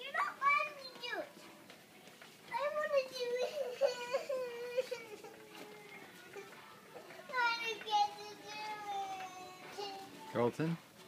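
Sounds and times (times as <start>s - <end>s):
small child whining cry: 3.4s - 5.6s.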